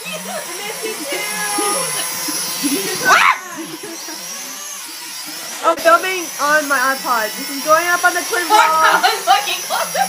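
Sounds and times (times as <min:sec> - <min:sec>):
drone motors whirring: 0:00.0 - 0:10.0.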